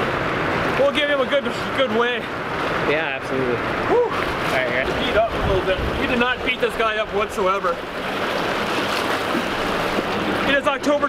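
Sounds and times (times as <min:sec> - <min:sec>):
churning white water rushing: 0:00.0 - 0:11.0.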